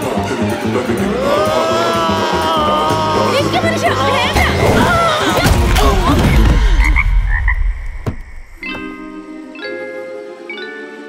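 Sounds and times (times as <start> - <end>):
man crying out: 1.0 - 3.6.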